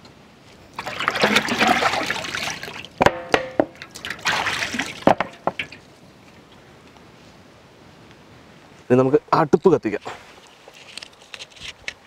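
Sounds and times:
water pouring and splashing: 0.8 - 5.9.

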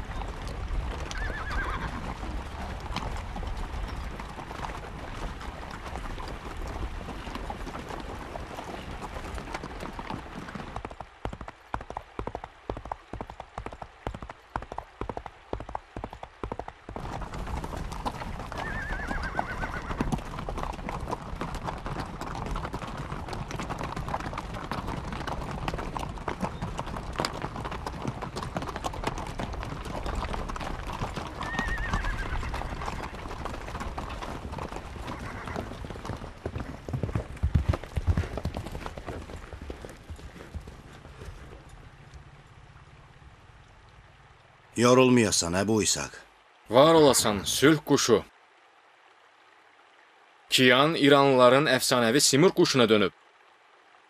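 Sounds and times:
galloping horse hoofbeats: 0.0 - 44.0
clatter of many horses' hooves: 0.0 - 48.2, 50.5 - 53.1
horse whinnying: 1.0 - 2.2, 18.4 - 20.2, 31.1 - 35.8.

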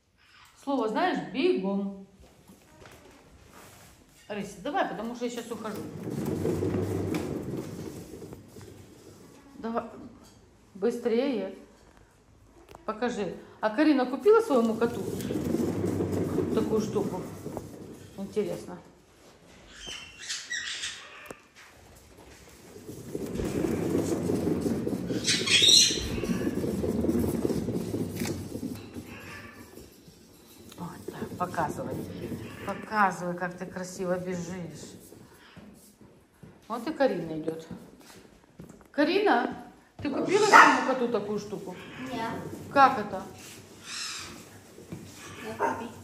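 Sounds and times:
exercise wheel rumbling: 3.5 - 19.5, 21.5 - 46.0.

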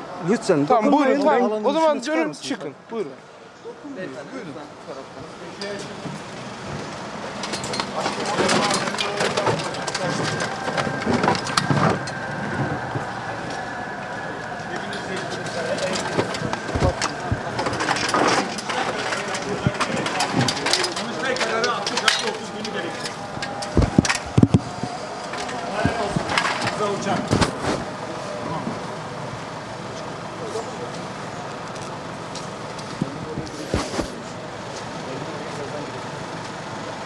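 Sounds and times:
metal barriers knocking and clanking: 7.4 - 12.2, 15.0 - 24.6
people talking over one another: 7.7 - 36.0.

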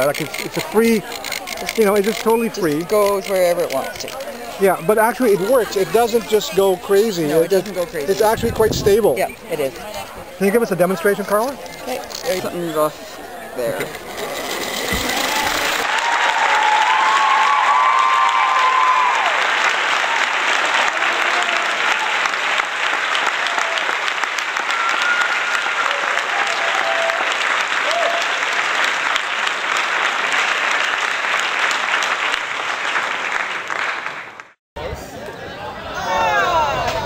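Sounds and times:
crowd applauding: 0.0 - 8.0, 14.4 - 34.6
voices cheering: 15.0 - 22.3, 23.4 - 28.4, 35.2 - 37.0.

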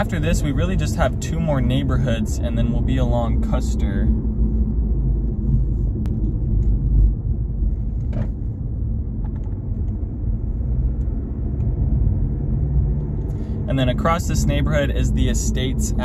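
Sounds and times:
car engine and tyres rumbling: 0.0 - 16.0.

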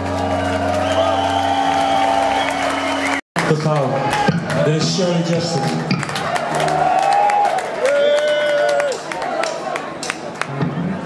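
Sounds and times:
audience cheering and whooping: 0.0 - 3.2, 3.8 - 11.0.

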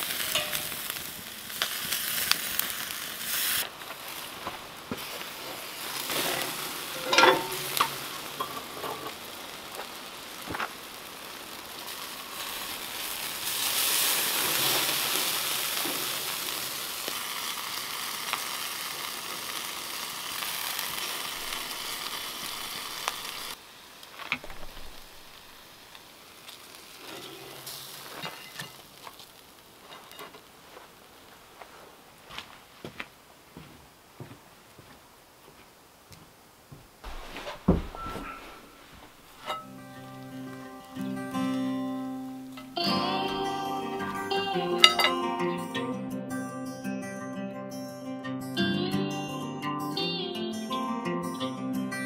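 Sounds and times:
meat sizzling on a grill: 0.0 - 31.6, 38.6 - 45.8
sharp metal clank: 0.2 - 0.9, 7.0 - 9.1, 44.8 - 45.2.

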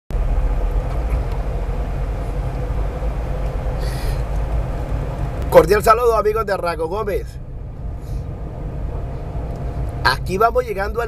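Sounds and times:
engine and tyre rumble: 0.1 - 11.0
faint steady hum: 0.2 - 11.0.

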